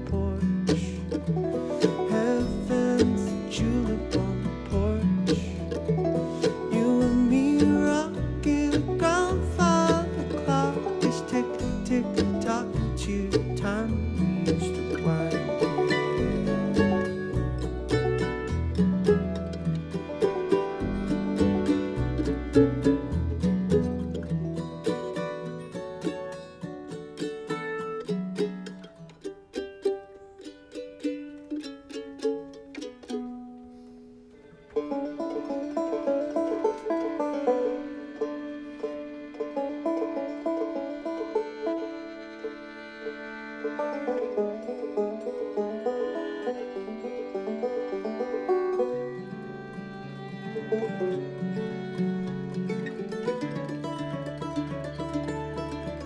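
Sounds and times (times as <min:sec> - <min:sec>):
upright bass: 0:00.0 - 0:27.3, 0:34.8 - 0:38.6, 0:39.4 - 0:42.0, 0:43.9 - 0:56.0
banjo picking: 0:00.0 - 0:56.0
bluegrass string band playing: 0:00.0 - 0:56.0.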